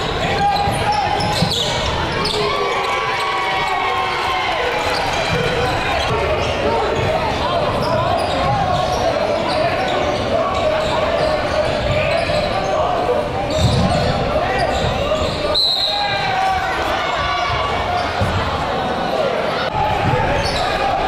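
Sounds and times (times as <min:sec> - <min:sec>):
crowd hubbub: 0:00.0 - 0:21.0.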